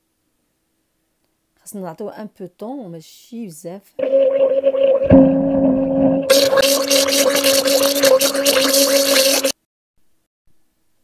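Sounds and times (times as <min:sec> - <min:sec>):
mixture sloshing in blender: 0:04.0 - 0:09.6
blender motor hum: 0:06.3 - 0:09.6.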